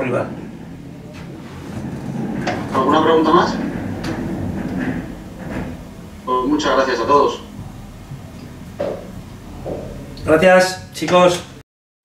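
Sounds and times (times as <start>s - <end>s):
low room rumble: 0.0s - 11.6s
faint knock: 8.8s - 10.0s.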